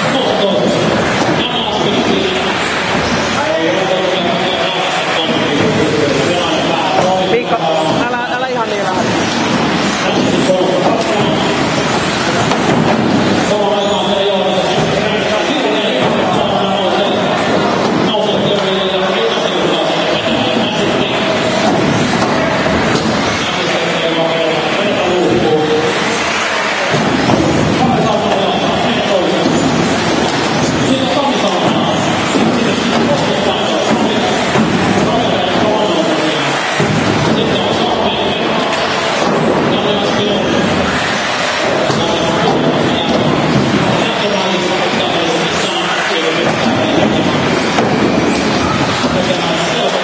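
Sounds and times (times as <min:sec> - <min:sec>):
rc cars racing: 0:08.6 - 0:50.0
rc car motors whining: 0:40.6 - 0:41.9.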